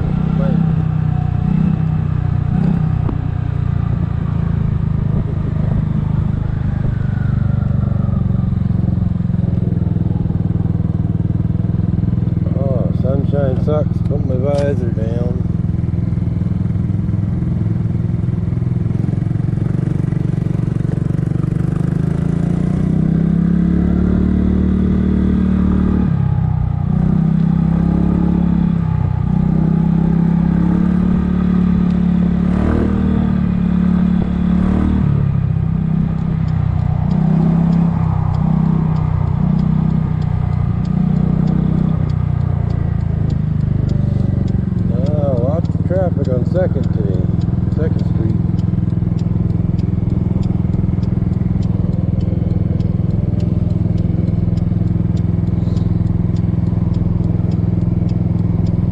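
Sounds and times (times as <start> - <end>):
scooter engine running: 0.0 - 58.9
wind and road noise: 0.0 - 58.9.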